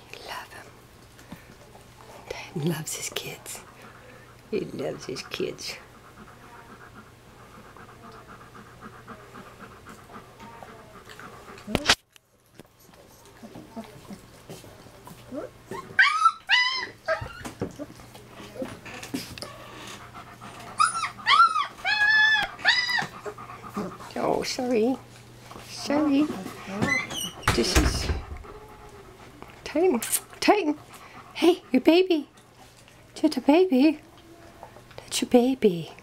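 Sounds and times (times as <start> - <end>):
dog panting: 1.3 - 12.0, 12.7 - 15.9, 17.1 - 35.4
puppy whining: 15.0 - 24.0, 26.2 - 30.3.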